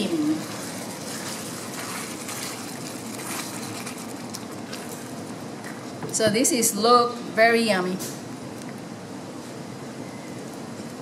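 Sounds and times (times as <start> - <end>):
spatula stirring: 0.0 - 5.3.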